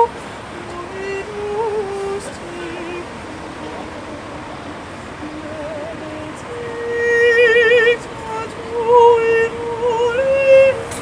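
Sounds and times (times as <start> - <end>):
city street traffic: 0.0 - 11.0
counter-tenor singing unaccompanied: 0.0 - 11.0.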